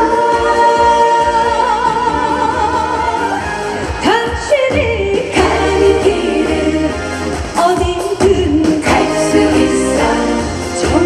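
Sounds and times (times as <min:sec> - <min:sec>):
loud backing music: 0:00.0 - 0:11.0
woman singing into microphone: 0:00.0 - 0:11.0.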